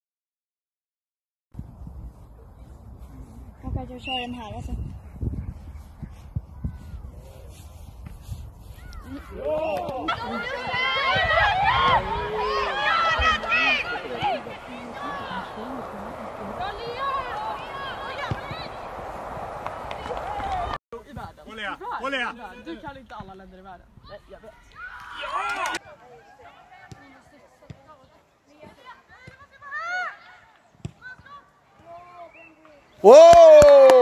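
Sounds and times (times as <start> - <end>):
high voices shouting: 9.3 - 20.8.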